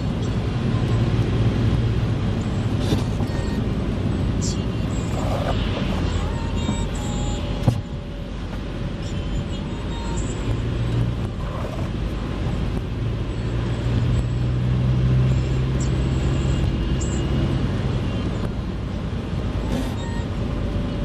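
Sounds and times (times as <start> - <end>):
car engine and tyre noise: 0.0 - 21.0.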